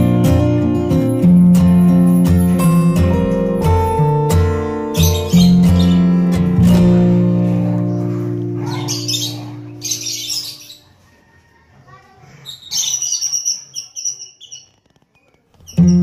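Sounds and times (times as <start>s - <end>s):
acoustic guitar music: 0.0s - 10.7s, 15.7s - 16.0s
lovebirds chirping: 1.0s - 6.9s, 7.8s - 11.2s, 12.3s - 16.0s.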